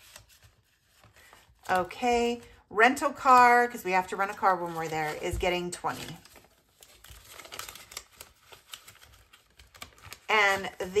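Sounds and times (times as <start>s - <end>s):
paper banknotes rustling: 0.0s - 11.0s.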